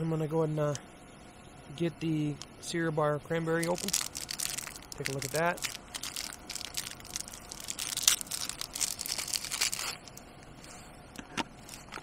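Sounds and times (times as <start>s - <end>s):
foil wrapper crinkling: 3.6s - 10.8s, 11.6s - 12.0s.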